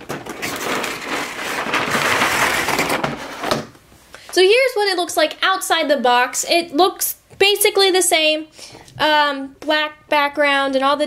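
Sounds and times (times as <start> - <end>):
cardboard rustling and scraping: 0.0 - 3.7.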